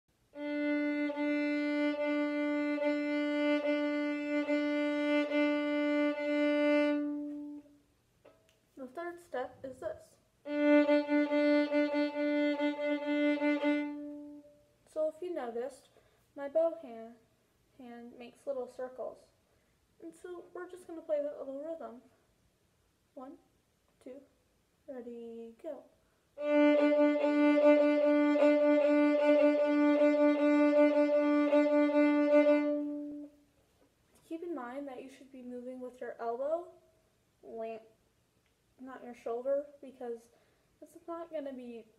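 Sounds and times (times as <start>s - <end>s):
fiddle shuffle bowing: 0.4s - 7.7s, 10.5s - 14.6s, 26.4s - 33.3s.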